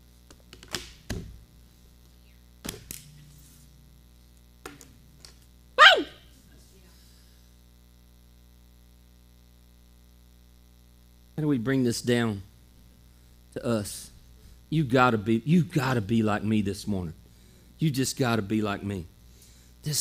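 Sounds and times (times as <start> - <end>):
low electrical hum: 0.0 - 20.0
vocal whoop falling in pitch: 5.8 - 6.3.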